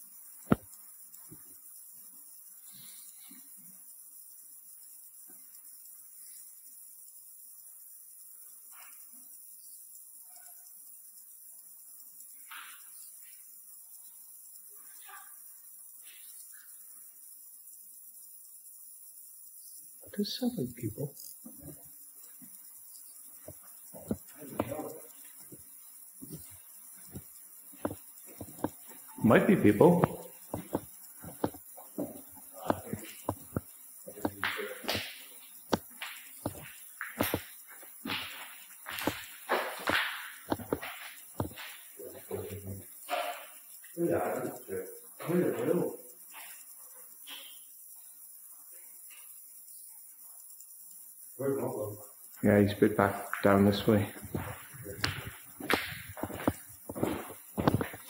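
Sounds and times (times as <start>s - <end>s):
steady hiss: 0.0s - 58.0s
water drips echoing off stone: 21.5s - 42.0s, 53.2s - 58.0s.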